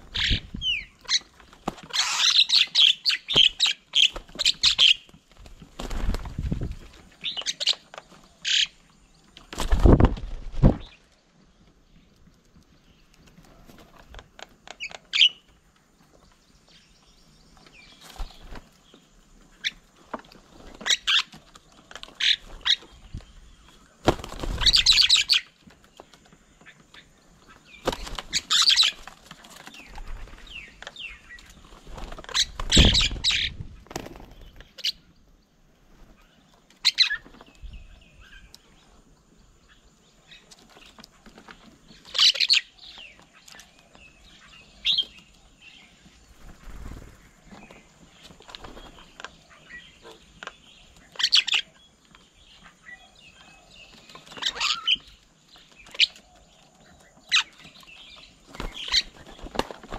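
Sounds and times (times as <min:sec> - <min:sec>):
bird wingbeats: 0:03.3 - 0:07.1, 0:09.4 - 0:11.0, 0:23.9 - 0:25.4, 0:27.5 - 0:34.9, 0:46.3 - 0:49.3, 0:58.3 - 0:59.9.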